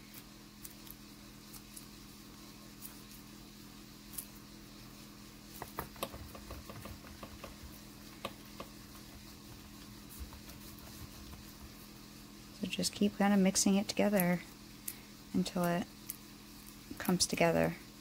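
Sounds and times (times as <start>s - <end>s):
steady low hum: 0.0s - 18.0s
gloved hands kneading clay: 5.6s - 12.0s.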